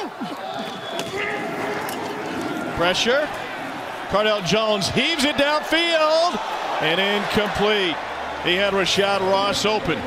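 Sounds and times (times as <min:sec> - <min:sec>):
players shouting calls: 0:00.0 - 0:10.0
stadium crowd noise: 0:00.0 - 0:10.0.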